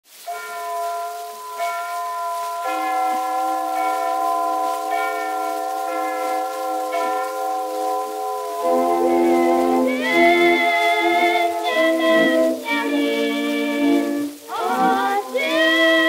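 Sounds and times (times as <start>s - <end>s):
bell chimes ringing: 0.3s - 16.0s.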